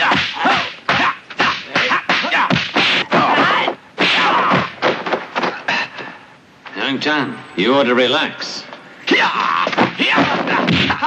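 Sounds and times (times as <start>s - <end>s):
punches and blocks whacking: 0.0s - 5.6s, 9.3s - 11.0s.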